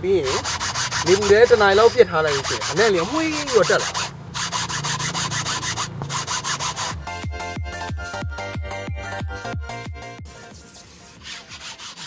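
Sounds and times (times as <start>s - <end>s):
scrubber rubbing leather seat: 0.2s - 7.0s, 10.7s - 12.0s.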